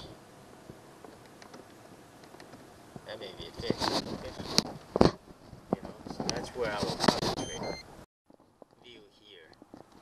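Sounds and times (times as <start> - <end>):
two-note electronic beep: 7.4 - 7.8.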